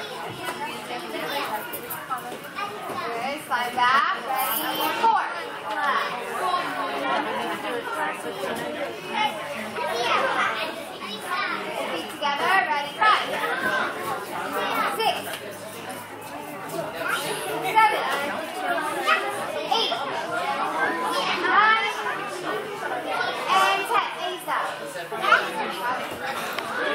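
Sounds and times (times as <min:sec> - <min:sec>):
children and adults chattering: 0:00.0 - 0:26.9.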